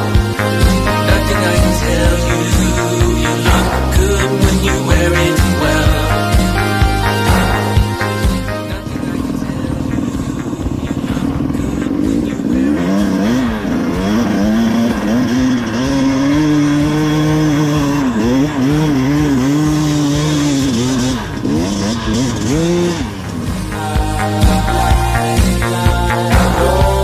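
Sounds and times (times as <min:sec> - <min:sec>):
dirt bike engine revving: 0:00.0 - 0:27.0.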